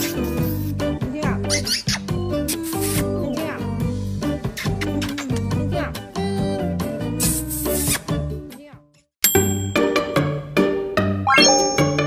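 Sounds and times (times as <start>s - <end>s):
background music: 0.0s - 12.0s
bright ding chime: 9.3s - 10.1s, 11.3s - 12.0s.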